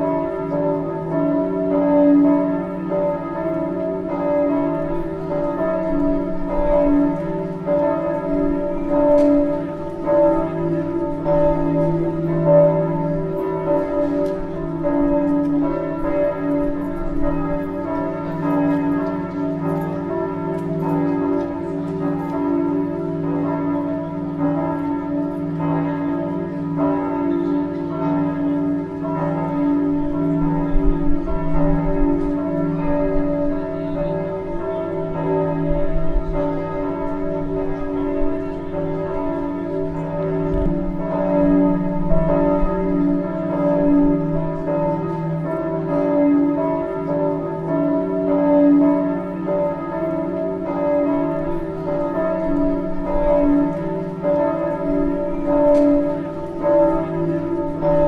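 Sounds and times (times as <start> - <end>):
church bells ringing: 0.0 - 58.0.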